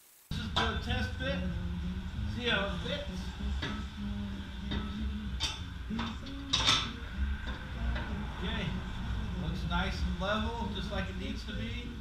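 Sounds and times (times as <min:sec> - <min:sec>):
low steady hum: 0:00.3 - 0:12.0.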